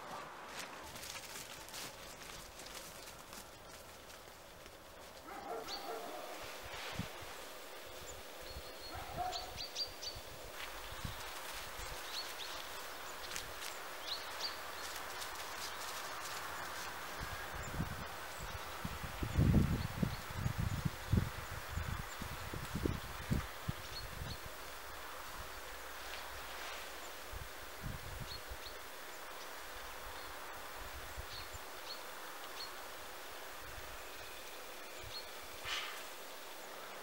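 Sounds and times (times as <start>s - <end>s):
steady outdoor hush: 0.0s - 37.0s.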